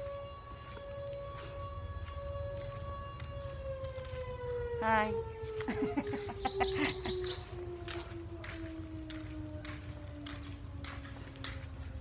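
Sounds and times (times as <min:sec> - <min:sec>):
distant siren winding down: 0:00.0 - 0:12.0.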